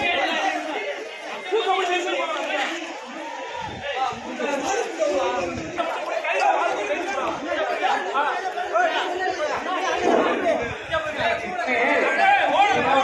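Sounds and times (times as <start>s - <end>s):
men talking and calling out: 0.0s - 13.0s.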